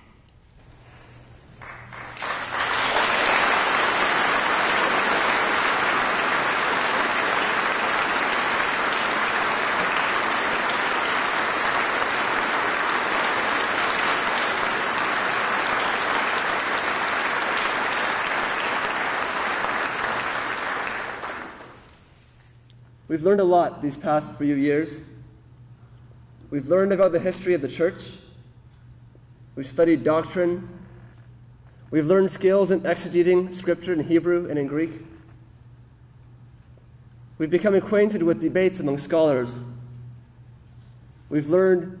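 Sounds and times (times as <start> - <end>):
audience applauding: 1.6 - 22.0.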